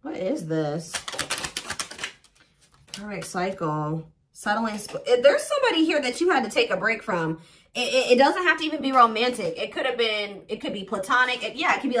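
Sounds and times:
cards being shuffled: 0.9s - 3.4s.

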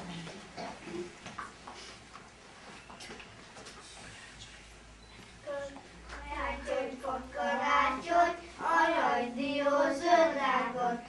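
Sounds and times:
young children singing: 5.5s - 11.0s.

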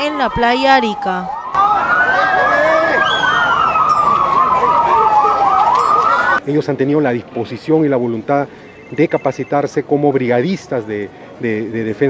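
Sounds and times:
siren fast yelp: 0.0s - 6.4s
siren slow wail: 0.1s - 6.4s.

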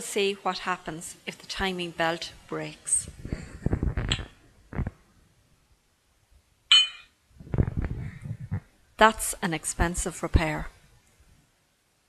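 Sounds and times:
sharp metallic clink: 6.7s - 7.2s.

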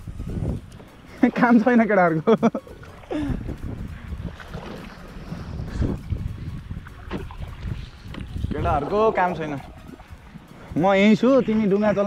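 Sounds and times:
wind rumbling on microphone: 0.0s - 1.4s, 2.6s - 12.0s.

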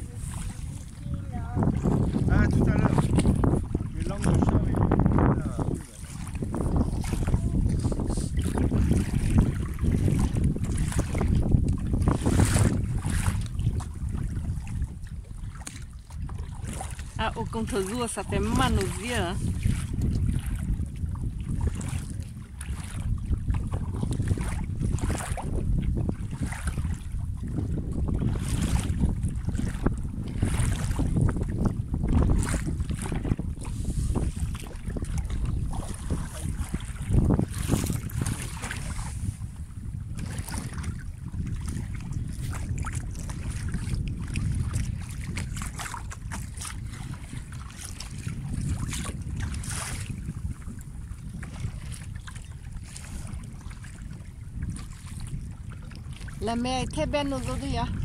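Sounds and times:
sea water splashing and lapping: 0.0s - 58.0s
wind buffeting microphone: 0.0s - 58.0s.

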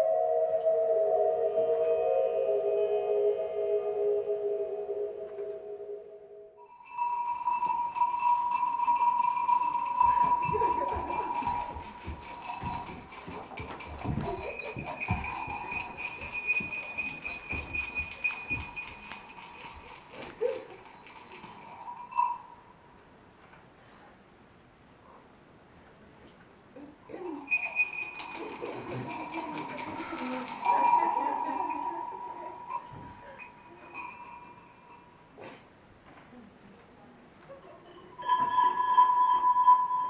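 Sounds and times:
high whistling tone: 0.0s - 6.6s, 38.2s - 40.0s
irregular thumps: 10.0s - 21.0s.

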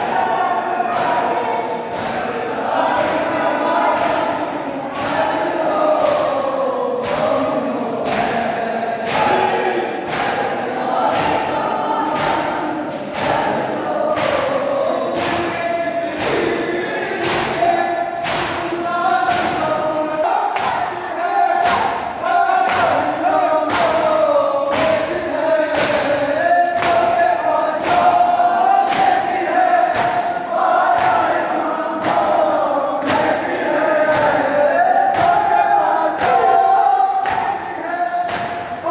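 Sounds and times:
men chanting in unison: 0.0s - 38.9s.

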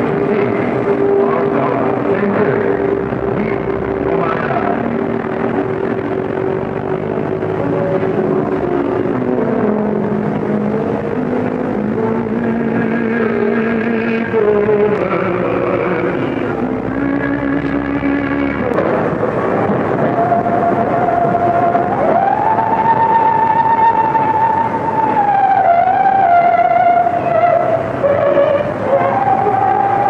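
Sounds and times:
crowded city street noise: 0.0s - 30.0s
held tones changing pitch: 0.0s - 30.0s.

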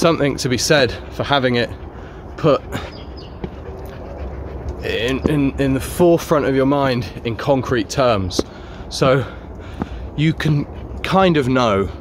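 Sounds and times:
man talking: 0.0s - 1.8s, 2.4s - 2.9s, 4.8s - 9.5s, 10.1s - 12.0s
low background rumble: 0.0s - 12.0s.

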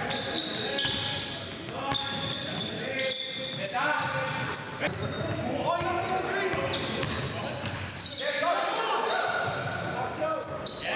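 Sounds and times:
sneakers squeaking: 0.0s - 10.9s.

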